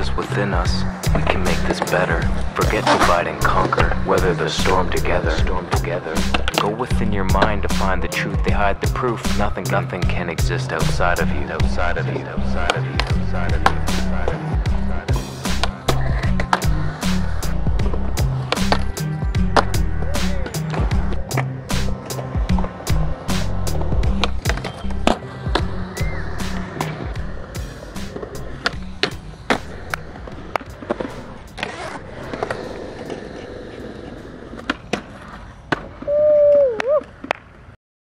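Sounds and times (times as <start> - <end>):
skateboard wheels rolling and grinding: 0.0 - 37.7
skateboard clacks: 1.1 - 8.0, 12.1 - 16.7, 18.2 - 22.8, 28.1 - 37.6
instrumental music beat: 12.6 - 34.7.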